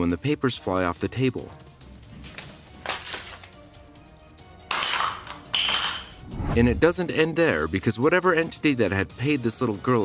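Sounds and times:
background music: 0.0 - 10.0
objects clattering onto floor: 4.7 - 6.1.

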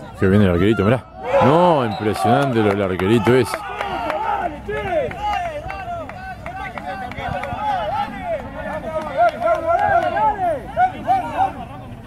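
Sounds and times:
voices calling and talking: 0.0 - 12.0.

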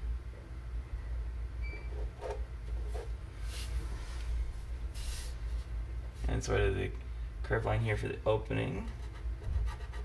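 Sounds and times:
low room hum: 0.0 - 10.0
short hiss: 3.5 - 5.4.

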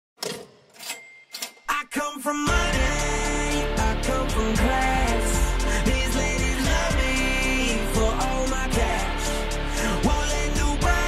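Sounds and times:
cash register clacks: 0.2 - 1.7
cash register bell ring: 0.2 - 1.8
person rapping: 1.7 - 11.0.

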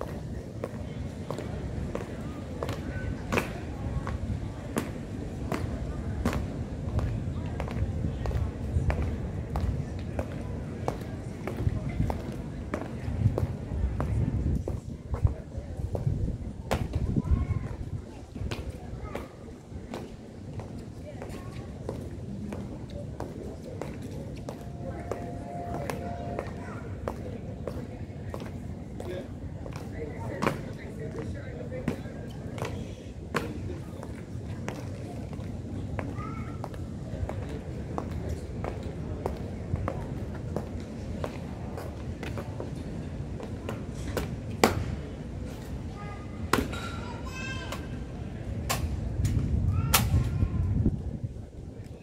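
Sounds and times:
people talking in background: 0.0 - 52.0.

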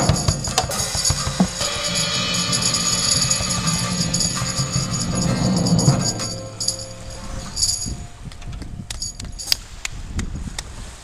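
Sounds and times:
small metal bells jingling: 0.0 - 8.2, 9.0 - 9.6
held musical note: 0.0 - 9.2.

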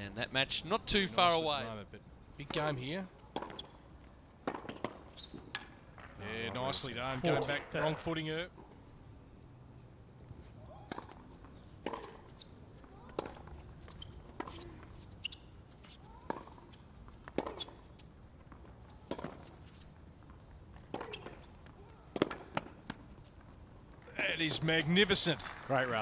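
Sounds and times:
tennis ball racket hits: 22.1 - 23.0.

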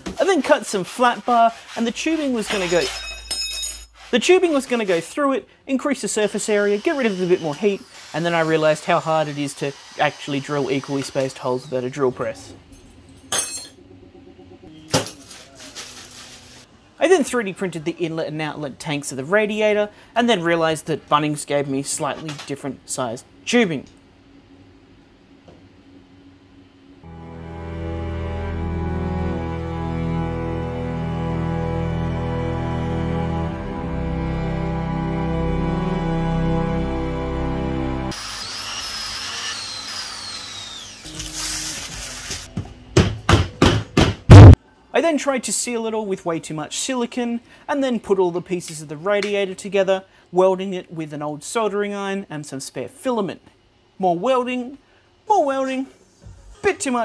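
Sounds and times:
sharp knock: 43.0 - 44.6.

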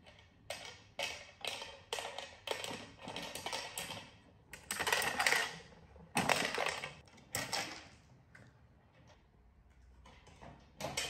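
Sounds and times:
kibble rattling in plastic toy: 0.6 - 7.8.

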